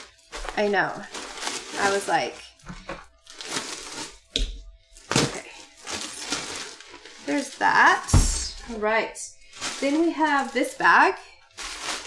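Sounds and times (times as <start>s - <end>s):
plastic bags rustling: 0.0s - 12.0s.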